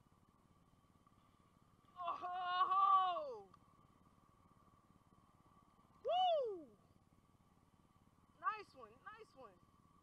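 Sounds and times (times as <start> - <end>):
man whooping: 6.0 - 6.8.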